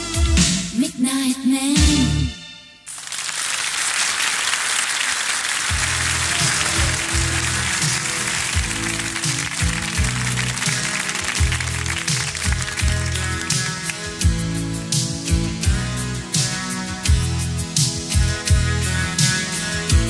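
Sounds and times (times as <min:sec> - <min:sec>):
studio audience applauding: 0:02.9 - 0:14.4
song with bass line and beat: 0:05.7 - 0:20.0.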